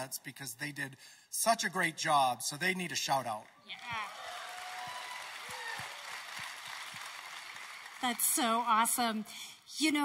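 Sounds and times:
audience applauding: 3.3s - 9.2s.

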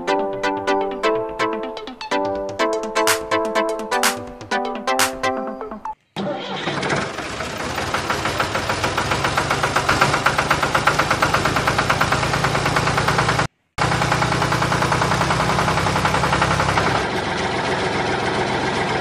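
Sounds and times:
tractor engine chugging at idle: 6.4s - 19.0s.

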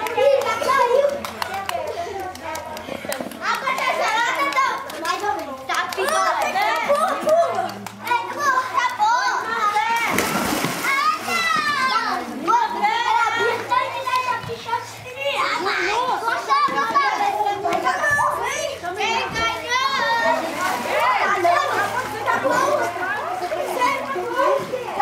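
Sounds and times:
children shouting and chattering: 0.0s - 25.0s
water splashing: 9.5s - 14.4s, 19.7s - 25.0s.

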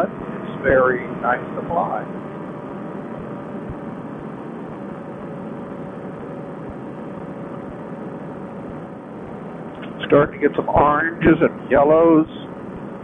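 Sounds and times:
faint steady tone: 0.0s - 13.0s
paramotor engine and propeller drone: 0.0s - 13.0s.

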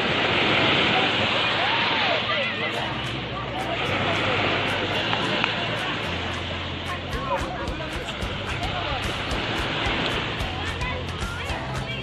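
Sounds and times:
small waves breaking: 0.0s - 12.0s.

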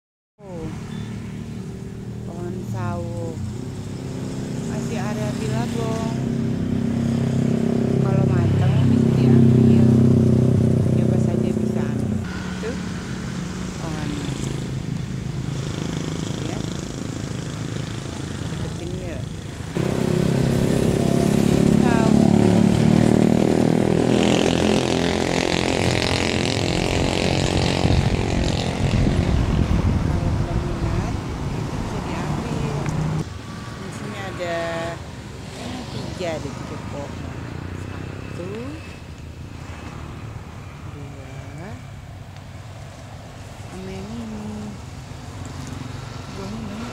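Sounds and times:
engine running with steady drone: 0.4s - 46.9s.

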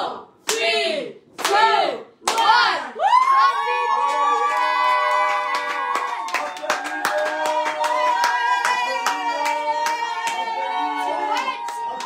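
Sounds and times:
people clapping: 1.4s - 12.0s.

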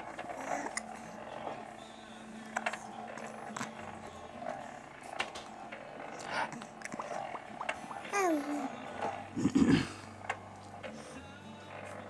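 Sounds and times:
steady low hum: 0.0s - 12.0s
baby cooing and grunting: 0.2s - 1.2s, 7.9s - 10.0s.

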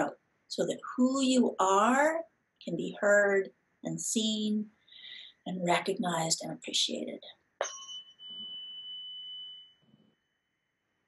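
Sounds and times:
tuning fork ringing: 7.6s - 10.0s.

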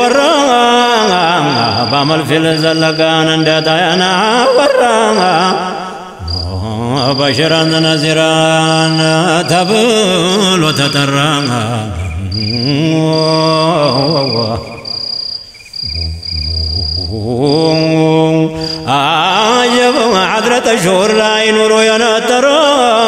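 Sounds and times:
person chanting long sliding notes: 15.8s - 22.3s.

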